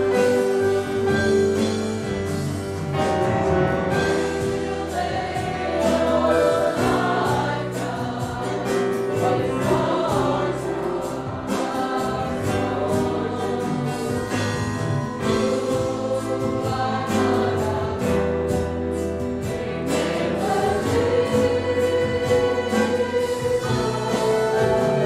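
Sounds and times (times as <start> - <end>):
congregation singing a hymn: 0.0 - 25.0.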